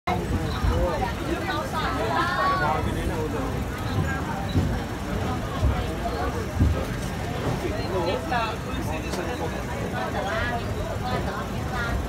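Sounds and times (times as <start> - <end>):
people talking: 0.1 - 12.0.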